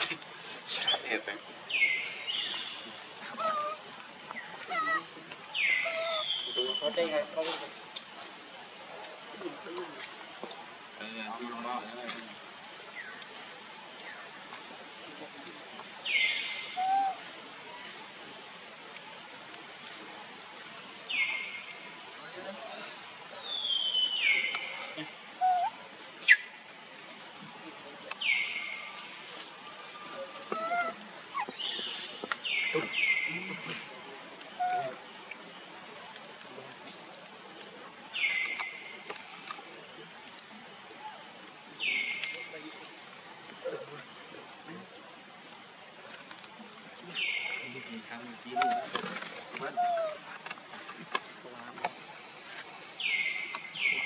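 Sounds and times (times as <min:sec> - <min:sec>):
high-pitched insect drone: 0:00.0 - 0:08.3
insect whine and chirring: 0:00.0 - 0:54.0.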